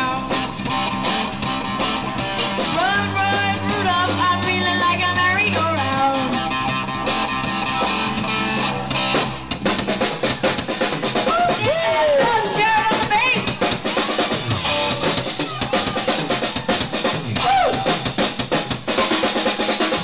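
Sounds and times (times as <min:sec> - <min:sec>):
pitch-bending guitar notes: 0:00.0 - 0:09.8
busy drumming: 0:00.0 - 0:20.0
live rock band playing: 0:00.0 - 0:20.0.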